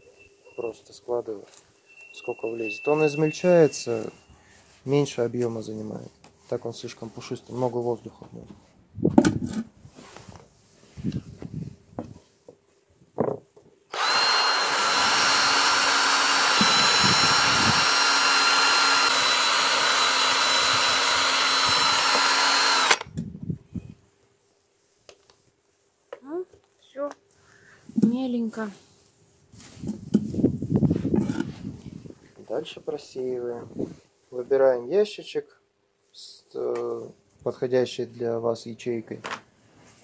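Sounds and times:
drill motor whining: 1.9s - 4.2s, 13.9s - 23.2s.

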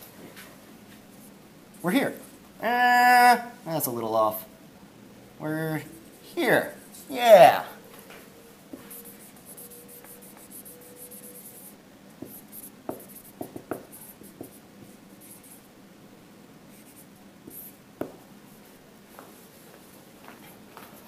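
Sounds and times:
marker squeaking on whiteboard: 8.8s - 15.6s.

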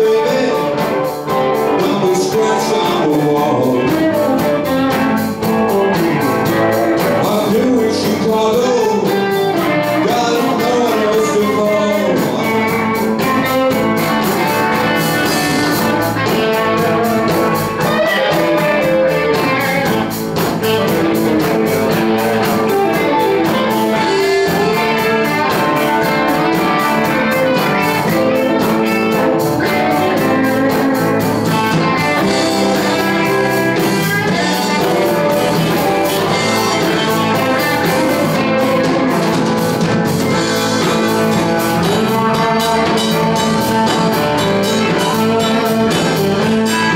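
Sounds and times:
drum kit: 0.0s - 46.9s
electric guitars: 0.0s - 46.9s.

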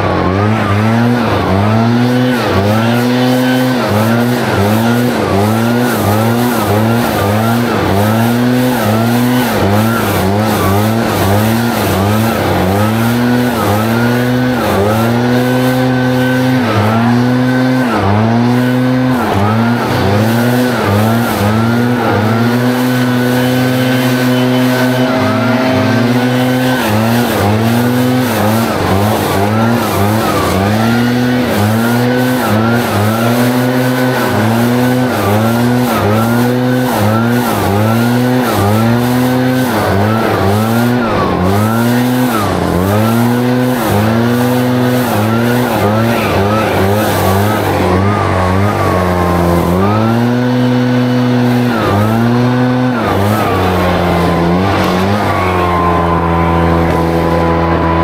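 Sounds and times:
leaf blower running: 0.0s - 58.0s.

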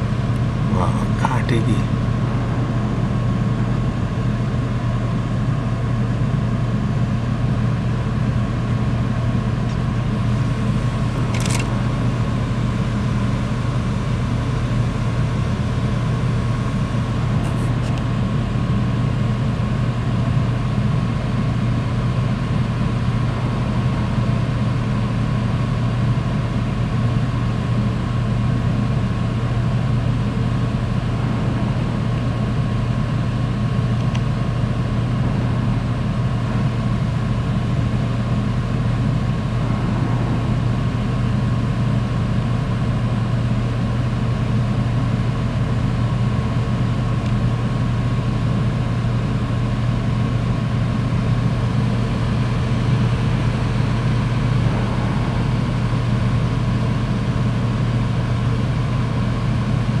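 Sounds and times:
ship engines droning: 0.0s - 60.0s.

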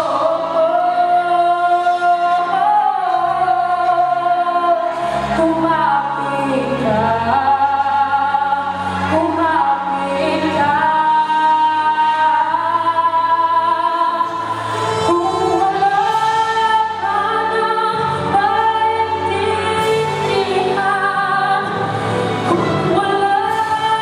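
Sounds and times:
backing music: 0.0s - 24.0s
boy singing into a microphone: 0.0s - 24.0s.

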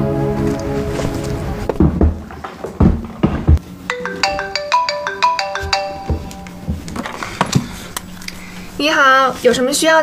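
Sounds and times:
phone melodic ringtone: 3.9s - 6.8s.

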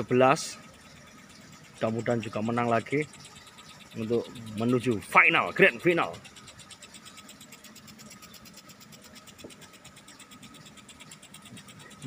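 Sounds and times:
sprinklers spraying water: 0.0s - 12.0s
thin steady tone: 0.0s - 12.0s.

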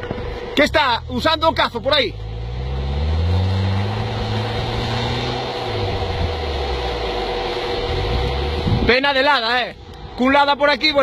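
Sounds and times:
engine pulling hard: 0.0s - 11.0s
tyres churning through snow: 0.0s - 11.0s.

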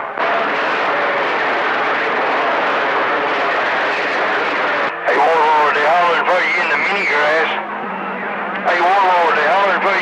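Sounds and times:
radio static hiss: 0.0s - 7.7s
voice over radio: 5.0s - 7.6s, 8.6s - 10.0s.

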